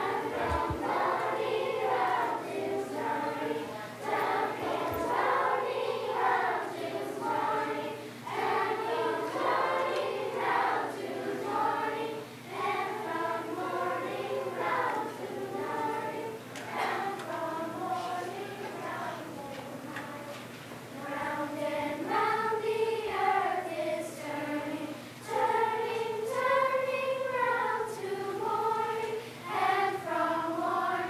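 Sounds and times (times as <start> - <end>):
children's choir singing: 0.0 - 31.0.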